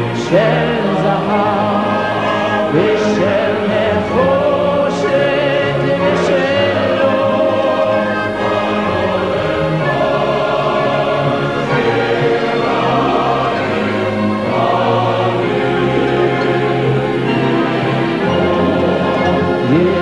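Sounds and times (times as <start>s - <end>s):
choir singing long held notes: 0.0s - 20.0s
orchestral music: 0.0s - 20.0s.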